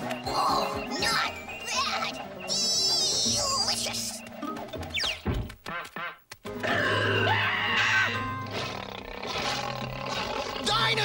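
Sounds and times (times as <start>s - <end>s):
cartoon soundtrack music: 0.0s - 11.0s.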